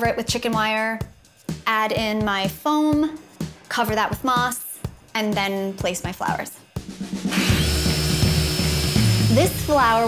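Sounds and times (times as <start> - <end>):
circular saw cutting wood: 7.3 - 10.0.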